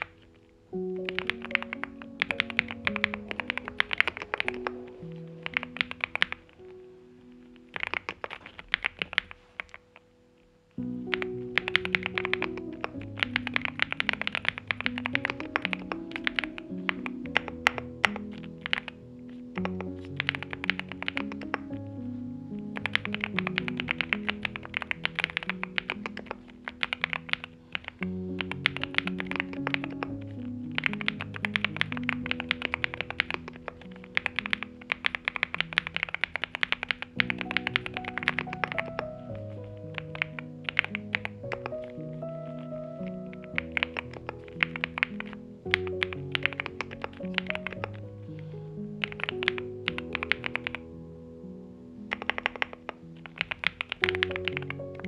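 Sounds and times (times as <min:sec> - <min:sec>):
background music: 0:00.0 - 0:55.0
mechanical keyboard typing: 0:01.0 - 0:06.7, 0:07.7 - 0:09.9, 0:11.0 - 0:19.0, 0:19.6 - 0:21.8, 0:22.7 - 0:42.0, 0:42.6 - 0:48.0, 0:49.0 - 0:50.8, 0:52.1 - 0:55.0.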